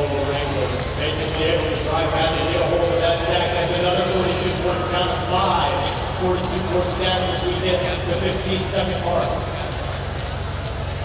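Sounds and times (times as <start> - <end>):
man commentating over public address: 0.0 - 9.8.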